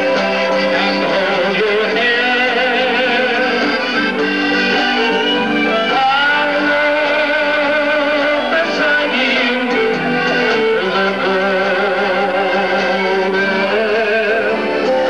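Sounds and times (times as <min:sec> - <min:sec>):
guitar melody: 0:00.0 - 0:15.0
person singing: 0:00.0 - 0:15.0.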